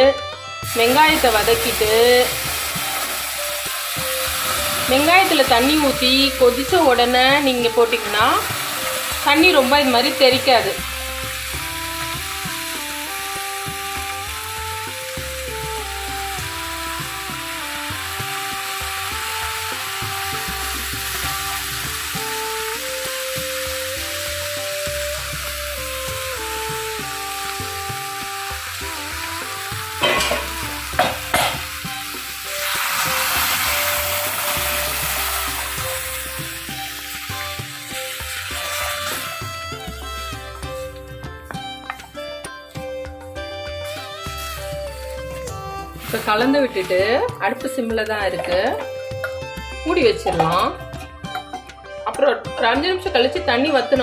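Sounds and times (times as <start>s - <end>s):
simple instrumental melody: 0.0s - 54.0s
food sizzling in a pan: 0.6s - 50.6s
spatula knocking on pan: 30.0s - 31.8s.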